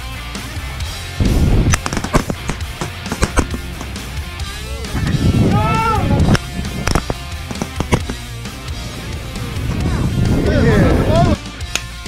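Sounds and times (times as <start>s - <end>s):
rock music: 0.0s - 12.0s.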